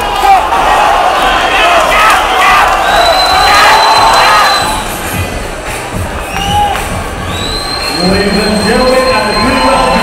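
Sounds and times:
crowd cheering and shouting: 0:00.0 - 0:10.0.

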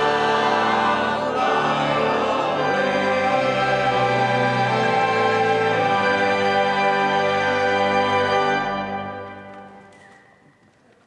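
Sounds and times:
church choir singing a hymn: 0:00.0 - 0:09.3.

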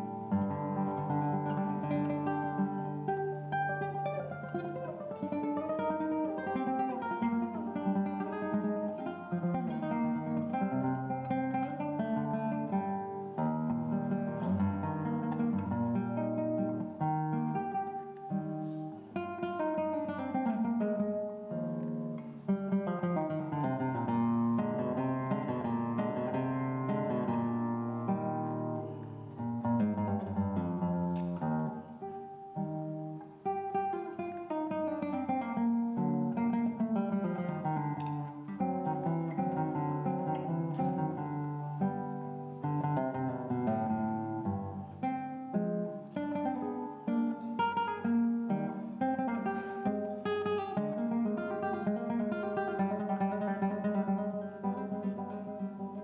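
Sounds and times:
fingerpicked classical guitar: 0:00.0 - 0:56.0.

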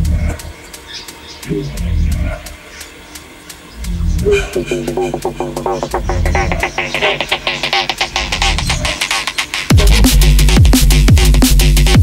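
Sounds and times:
deep bass notes: 0:00.0 - 0:00.6, 0:01.4 - 0:02.6, 0:03.7 - 0:12.0
hi-hat ticks: 0:00.4 - 0:09.7.

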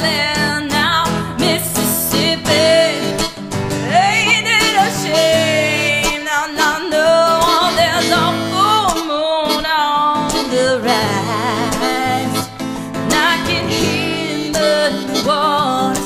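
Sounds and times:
country-rock band playing: 0:00.0 - 0:16.0
harmonica lead: 0:00.0 - 0:16.0.

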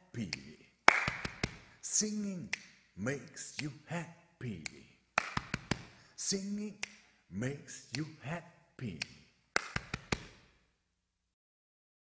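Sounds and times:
sharp hand claps: 0:00.3 - 0:01.7, 0:04.6 - 0:06.0, 0:06.8 - 0:07.0, 0:09.0 - 0:10.5.

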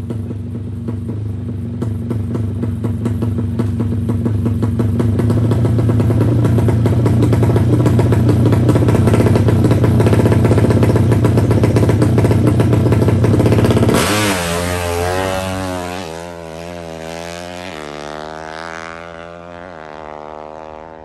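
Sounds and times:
motorcycle engine revving: 0:00.0 - 0:21.0.

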